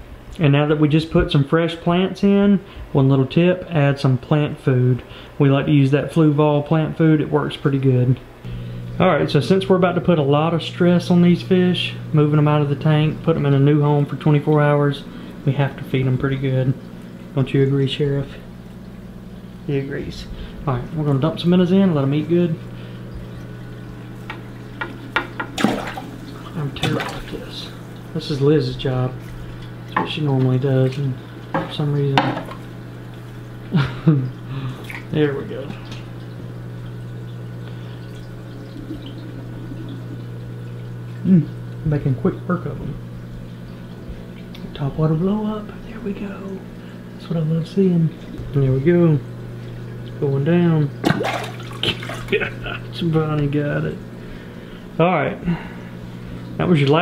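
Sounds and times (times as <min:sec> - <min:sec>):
low hum: 0:06.3 - 0:57.0
aquarium hiss: 0:08.4 - 0:57.0
water bubbling and trickling: 0:10.8 - 0:47.2, 0:48.1 - 0:53.0
fish splashing in water: 0:22.7 - 0:28.2, 0:34.5 - 0:41.8, 0:50.9 - 0:52.8.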